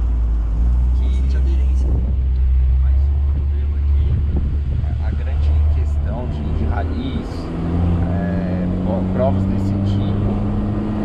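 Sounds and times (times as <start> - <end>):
car engine drone: 0.0 - 11.0
road noise: 0.0 - 11.0
wind buffeting microphone: 1.6 - 8.9.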